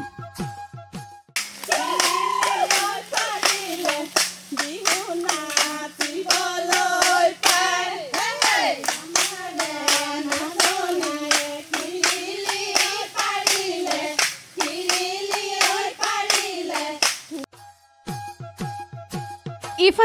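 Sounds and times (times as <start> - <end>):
hands clapping a steady beat: 1.4 - 17.5
women singing together: 1.6 - 17.5.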